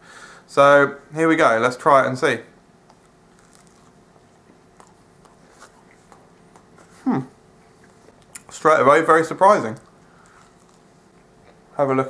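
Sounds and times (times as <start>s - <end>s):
faint chewing: 2.8s - 11.7s.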